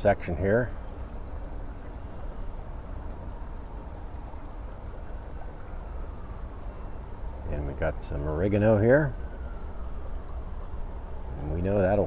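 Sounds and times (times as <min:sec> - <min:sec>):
shallow rocky creek flowing: 0:00.0 - 0:12.0.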